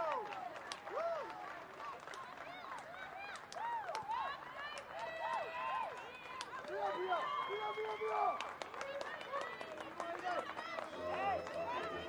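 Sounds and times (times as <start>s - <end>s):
sharp claps: 0.0s - 6.9s
high voices shouting and cheering: 10.2s - 12.0s.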